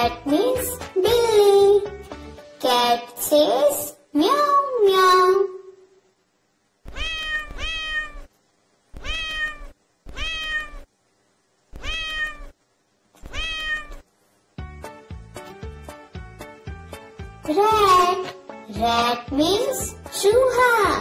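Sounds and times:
cat meowing: 6.8s - 8.3s, 8.9s - 10.9s, 11.7s - 12.6s, 13.2s - 14.0s.

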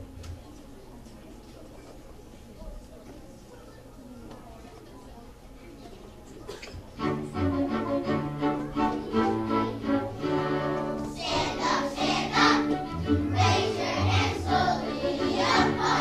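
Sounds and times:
children's choir singing: 8.4s - 16.0s.

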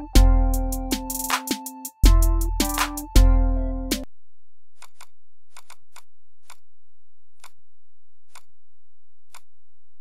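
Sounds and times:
computer mouse clicking: 4.8s - 6.6s.

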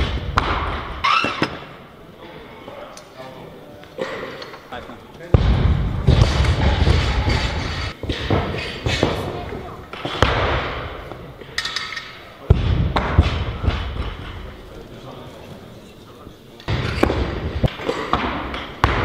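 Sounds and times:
barbells thudding on platforms: 5.4s - 11.6s, 12.5s - 14.4s, 16.7s - 19.0s.

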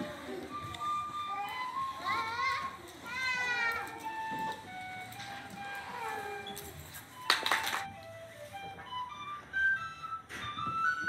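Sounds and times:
held musical notes: 0.0s - 11.0s.

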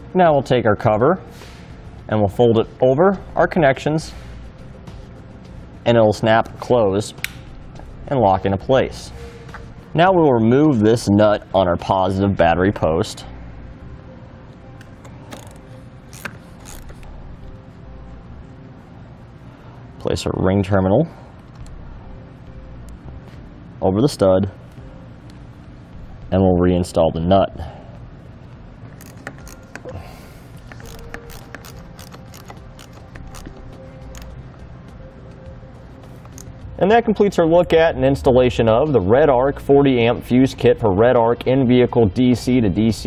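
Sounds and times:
socket ratchet clicking: 14.8s - 17.1s, 29.0s - 29.9s, 30.6s - 34.4s, 36.2s - 36.5s.

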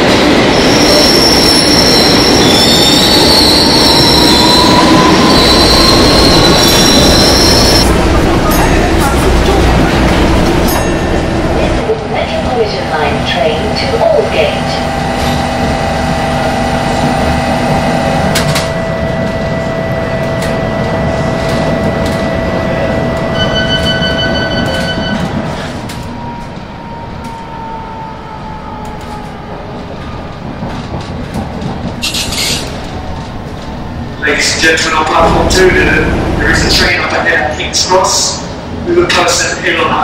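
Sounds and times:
train moving off: 0.0s - 40.0s
underground train humming: 0.0s - 40.0s
beeps: 23.3s - 25.4s.

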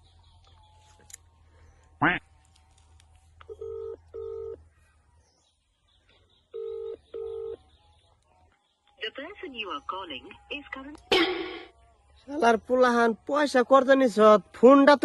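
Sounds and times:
phone ringback tone beeps: 3.5s - 4.6s, 6.6s - 7.6s.

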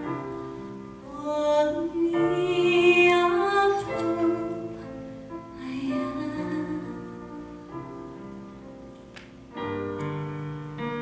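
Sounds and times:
digital piano accompaniment: 0.0s - 11.0s
woman singing into microphone: 1.1s - 4.8s, 5.6s - 7.1s.

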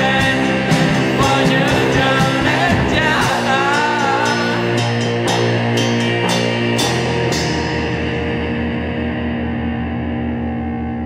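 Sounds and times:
lo-fi shoegaze rock music: 0.0s - 11.0s.

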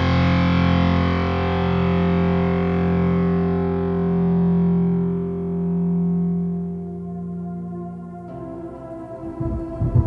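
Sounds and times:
distorted electric guitar chord: 0.0s - 9.3s.

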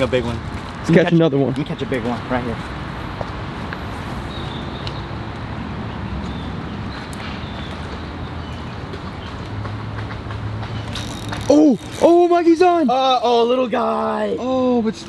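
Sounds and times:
fishing reel whirring: 10.9s - 12.1s.

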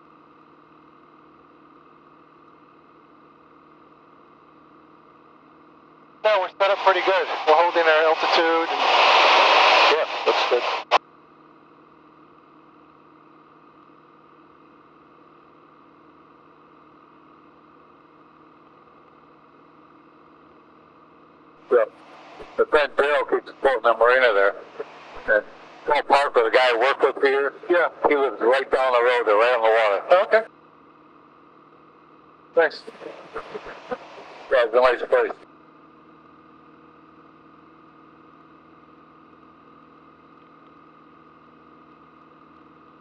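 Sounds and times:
faint plane engine hum: 0.0s - 43.0s.

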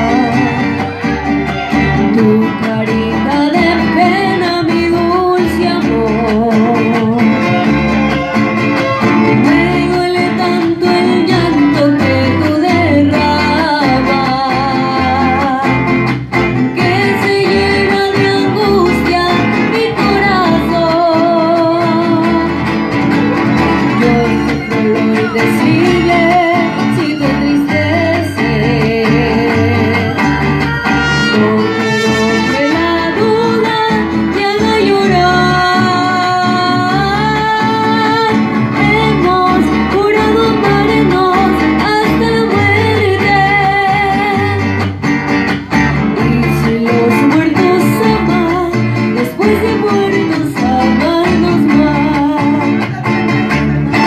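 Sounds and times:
violins: 0.0s - 2.8s, 7.2s - 9.6s
strummed guitars: 0.0s - 54.0s
woman singing: 0.0s - 54.0s.

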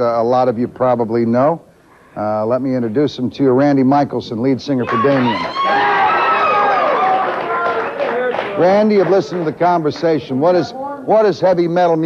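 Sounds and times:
audience applauding: 4.8s - 10.2s.

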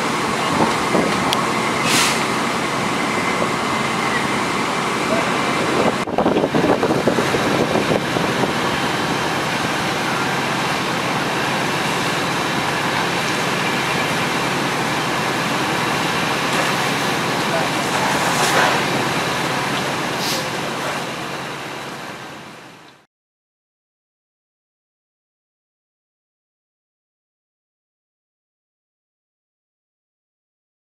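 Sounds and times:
fire engines and pumps running: 0.0s - 23.1s
indistinct voices: 0.1s - 6.0s, 6.6s - 21.3s.

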